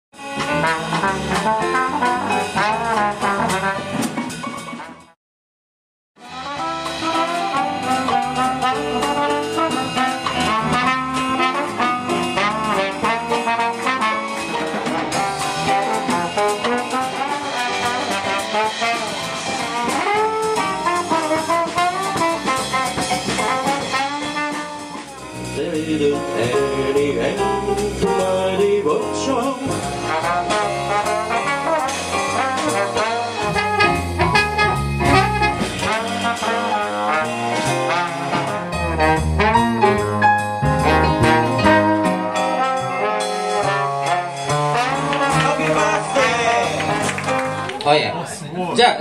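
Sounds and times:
brass horn melody: 0.2 - 5.2, 6.2 - 47.8
drums and cymbals: 0.2 - 5.2, 6.2 - 47.6.

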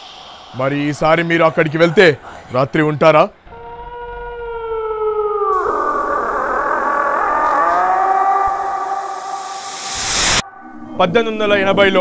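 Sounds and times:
wash of wavering tones: 0.0 - 0.7, 5.5 - 12.0
rising hiss: 0.0 - 1.4, 5.5 - 10.9
eerie held tone: 3.5 - 12.0.

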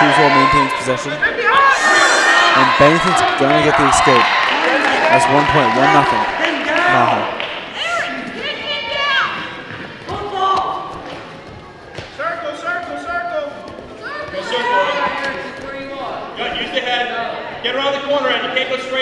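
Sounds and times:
people shouting in echoing gym: 0.0 - 7.0, 7.7 - 18.2.

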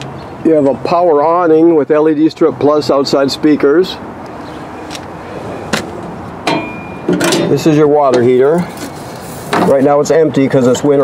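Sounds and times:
faint metallic ring: 6.5 - 7.5.

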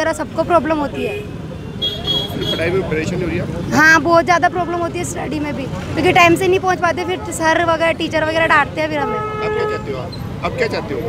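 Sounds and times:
people's voices: 0.0 - 11.0
vehicle passing by: 0.0 - 11.0.

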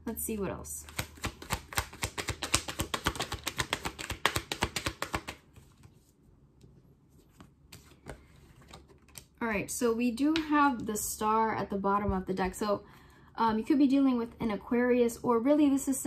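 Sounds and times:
cards being shuffled: 0.8 - 9.4.

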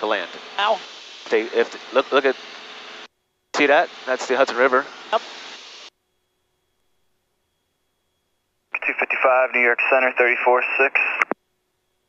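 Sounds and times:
radio voice: 0.0 - 2.3, 3.6 - 5.2, 8.8 - 11.4
faint hum: 0.0 - 12.0
intercom squelch: 8.8 - 11.4.

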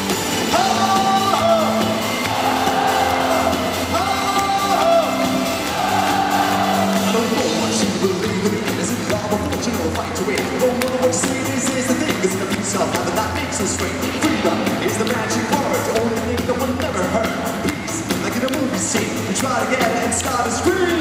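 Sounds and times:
pop dance music from live band: 0.0 - 21.0.

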